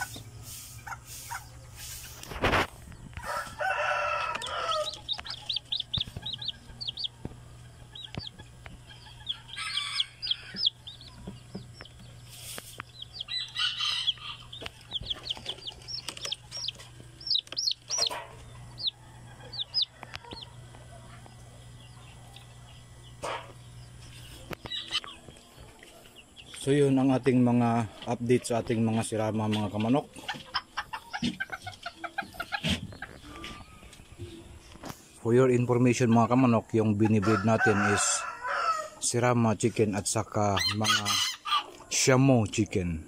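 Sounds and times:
adult chickens calling: 0:00.0 - 0:42.8
chicks peeping: 0:00.0 - 0:42.8
rooster crowing: 0:03.2 - 0:05.6, 0:09.3 - 0:11.0, 0:13.2 - 0:15.0, 0:18.7 - 0:21.2, 0:37.1 - 0:39.0, 0:40.6 - 0:41.8.

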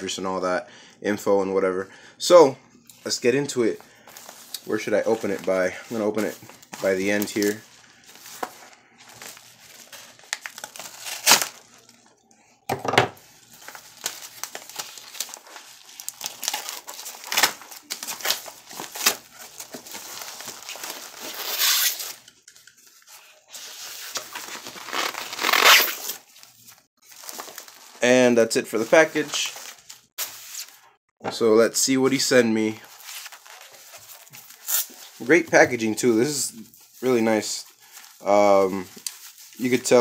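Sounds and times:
plastic wrapping crinkling: 0:03.2 - 0:12.3, 0:13.2 - 0:31.0, 0:31.9 - 0:40.0
envelope tearing: 0:04.2 - 0:12.0, 0:13.4 - 0:22.3, 0:23.7 - 0:26.3.

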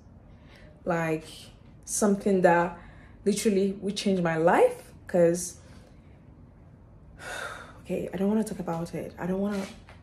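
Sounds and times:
woman speaking: 0:00.8 - 0:05.6, 0:07.8 - 0:09.9
woman breathing: 0:02.8 - 0:03.2, 0:07.1 - 0:07.8.

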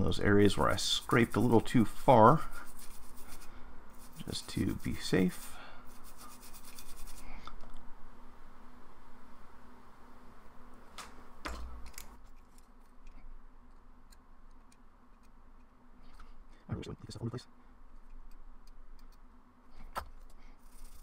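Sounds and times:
low steady hum: 0:00.0 - 0:21.0
hand tools scratching circuit board: 0:00.4 - 0:07.2, 0:20.6 - 0:21.0.

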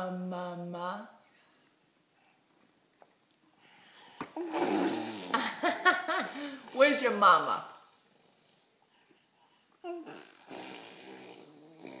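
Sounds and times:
baby blowing a raspberry: 0:04.4 - 0:05.4, 0:09.9 - 0:12.0.

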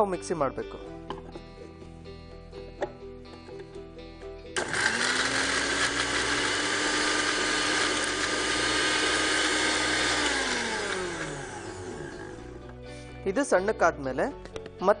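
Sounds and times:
kitchen mixer grinder running: 0:04.6 - 0:12.6.

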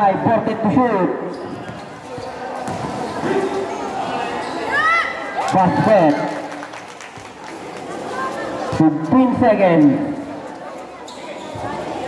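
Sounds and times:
basketball bouncing on concrete: 0:02.6 - 0:03.0.

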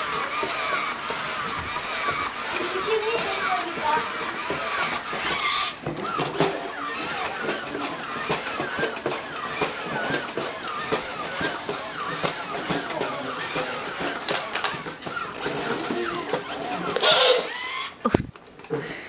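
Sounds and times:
toy robot electronic voice warbling: 0:15.9 - 0:18.0.

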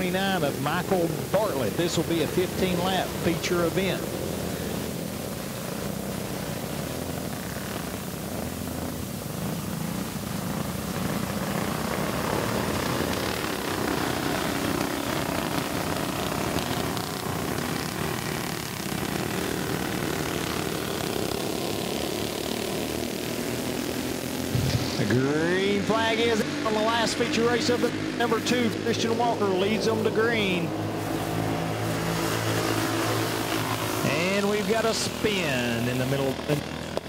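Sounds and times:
go-kart engines droning: 0:00.0 - 0:37.0.

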